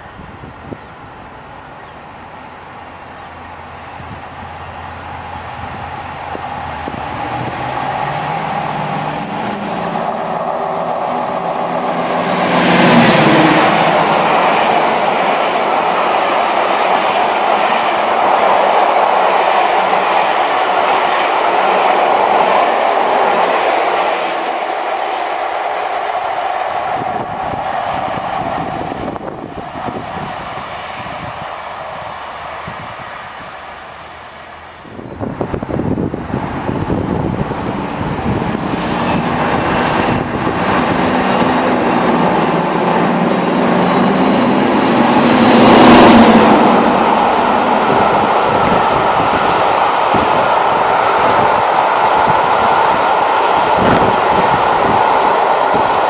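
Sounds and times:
wind buffeting microphone: 0.0s - 1.5s, 3.8s - 33.6s, 34.8s - 56.0s
diesel locomotive engine: 0.0s - 56.0s
train wheels clattering on rails: 6.3s - 29.0s.

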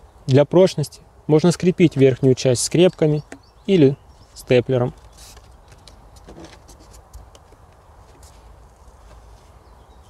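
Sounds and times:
hands handling cardboard: 4.9s - 9.6s.

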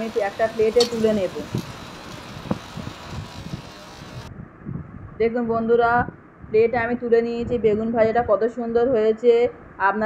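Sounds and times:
slices sizzling in oil: 0.0s - 4.3s.

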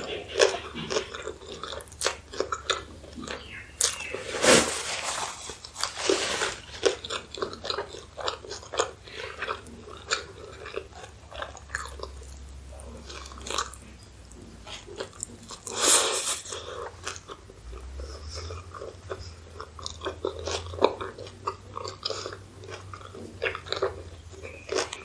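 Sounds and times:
chewing with wet mouth clicks: 0.0s - 4.2s, 6.8s - 15.8s, 16.5s - 25.0s
loud crunchy bite: 14.7s - 25.0s.

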